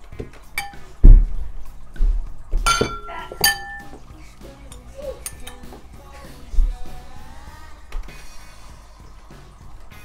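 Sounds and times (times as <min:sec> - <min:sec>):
utensil clinking on ceramic plate: 0:00.6 - 0:00.9, 0:02.6 - 0:04.0, 0:04.7 - 0:05.8
dull thump: 0:01.0 - 0:03.6.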